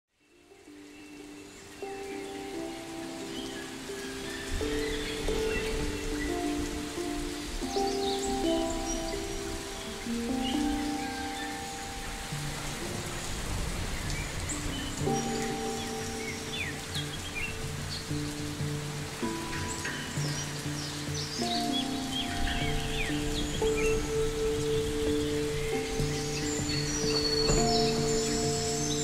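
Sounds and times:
rain-like hiss: 0:00.1 - 0:29.0
birds chirping: 0:00.2 - 0:29.0.

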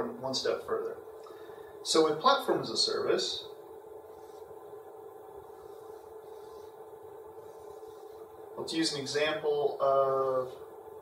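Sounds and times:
steady low hum: 0:00.0 - 0:11.0
marker scratching on whiteboard: 0:04.1 - 0:04.5, 0:05.5 - 0:06.8, 0:07.4 - 0:08.2.

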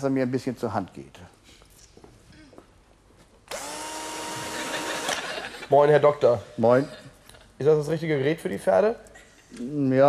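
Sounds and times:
appliance motor whining: 0:03.5 - 0:05.3.

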